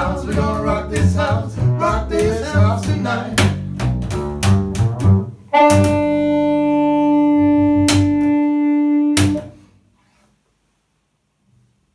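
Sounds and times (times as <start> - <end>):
upright bass: 0.0 - 9.6
blues harmonica note: 5.5 - 9.8.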